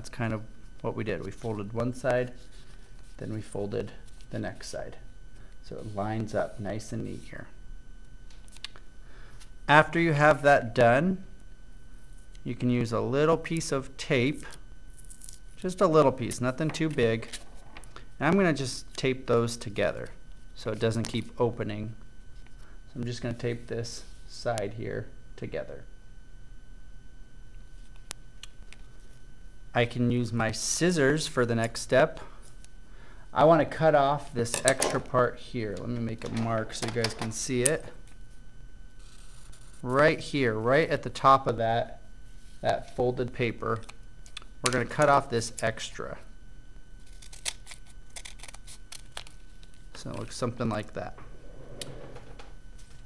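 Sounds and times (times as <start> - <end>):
low steady hum: 0.0 - 53.0.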